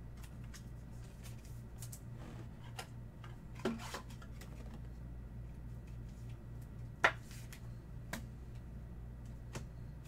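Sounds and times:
steady low hum: 0:00.0 - 0:10.0
cards and plastic clicking rustling: 0:00.1 - 0:02.1.

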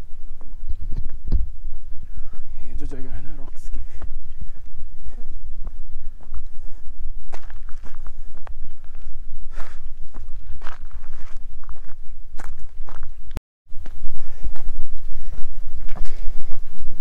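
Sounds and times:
steady low rumble: 0:00.0 - 0:17.0
footsteps on rock: 0:04.0 - 0:14.8.

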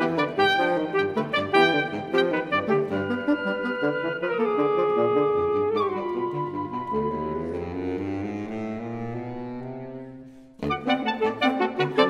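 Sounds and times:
saxophone quartet chords: 0:00.0 - 0:12.0.

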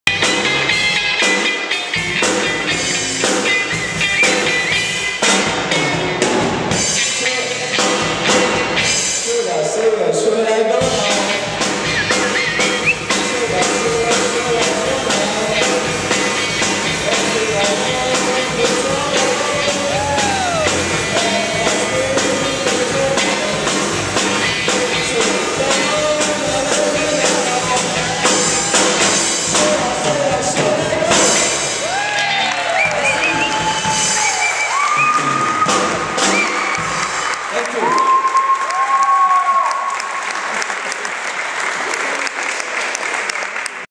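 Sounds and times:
drum kit beating: 0:00.0 - 0:09.7, 0:10.8 - 0:38.2
electric guitars: 0:00.1 - 0:09.8, 0:10.8 - 0:37.8
person singing: 0:10.7 - 0:34.2.

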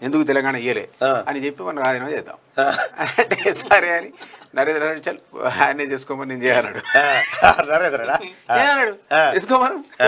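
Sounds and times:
man talking animatedly: 0:00.0 - 0:10.0.

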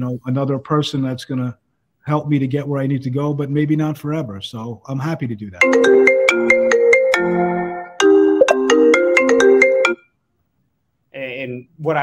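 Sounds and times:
phone ringtone: 0:05.6 - 0:10.1.

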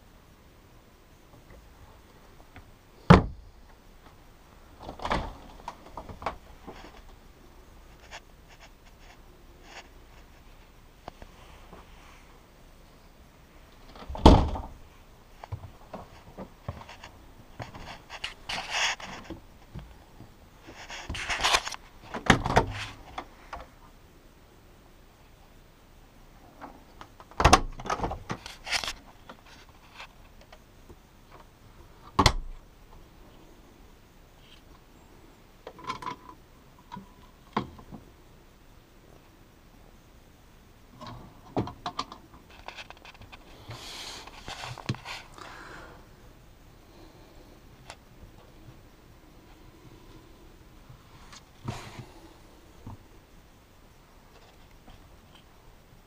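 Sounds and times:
rustling and rattling: 0:01.4 - 0:12.3, 0:13.6 - 0:23.8, 0:41.0 - 0:45.6
cabinet door opening and shutting: 0:03.0 - 0:03.4, 0:04.8 - 0:06.4, 0:13.8 - 0:14.8, 0:22.1 - 0:23.0, 0:27.3 - 0:28.4, 0:32.1 - 0:32.5
knocks and thuds: 0:03.1 - 0:03.4, 0:14.0 - 0:14.8
refrigerator door opening and shutting: 0:03.1 - 0:03.4, 0:04.8 - 0:06.4, 0:13.8 - 0:14.8, 0:22.1 - 0:23.1, 0:27.3 - 0:28.4, 0:32.1 - 0:32.5.

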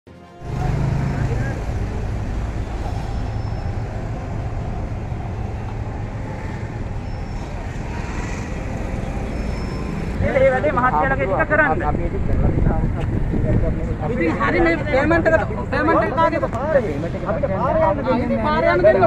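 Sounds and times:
indistinct crowd voices: 0:00.1 - 0:19.0
low traffic rumble: 0:00.2 - 0:19.0.

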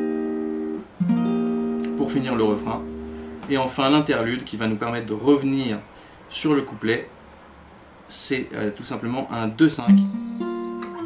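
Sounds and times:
acoustic guitar chord: 0:00.0 - 0:03.5, 0:09.9 - 0:11.0.

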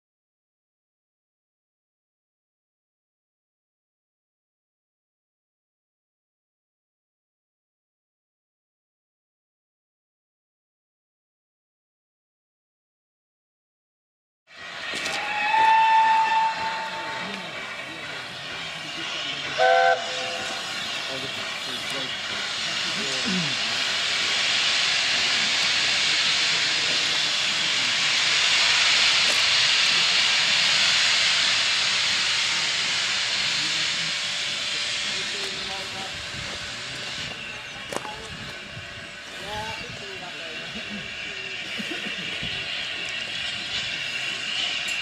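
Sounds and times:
hiss of escaping steam: 0:14.5 - 0:45.0
steam locomotive whistle: 0:14.9 - 0:17.6, 0:19.5 - 0:20.9.

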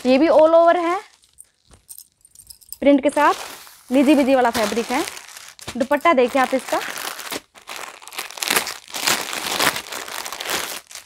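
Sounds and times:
plastic packet crinkling: 0:00.0 - 0:11.0.

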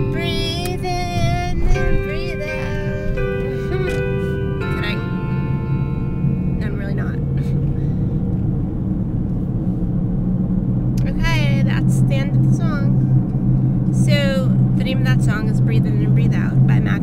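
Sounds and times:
car engine hum: 0:00.0 - 0:17.0
road noise inside car: 0:00.0 - 0:17.0.

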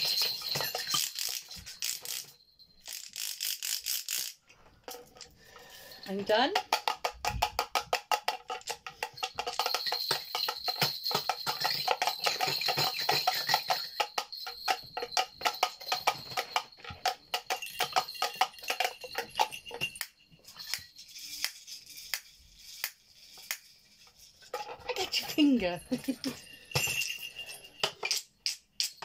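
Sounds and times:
toy percussion rattling and jingling: 0:00.0 - 0:29.0.

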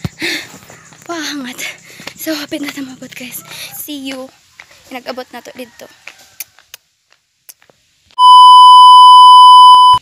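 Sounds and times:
high-pitched test-tone beep: 0:08.2 - 0:10.0.

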